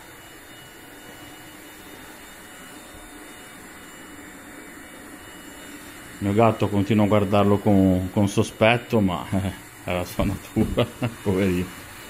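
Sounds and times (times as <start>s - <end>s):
cordless vacuum cleaner running: 0.0s - 12.0s.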